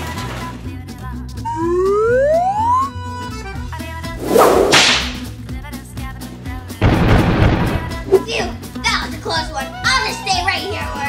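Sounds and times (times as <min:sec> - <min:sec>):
background music: 0:00.0 - 0:11.0
loud whip-like whoosh: 0:04.1 - 0:05.3.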